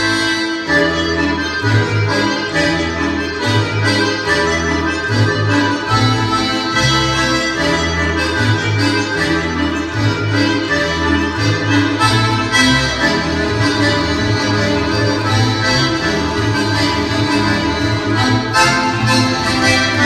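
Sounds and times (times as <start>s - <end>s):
accordion folk dance tune: 0.0s - 20.0s
steady bass line: 0.0s - 20.0s.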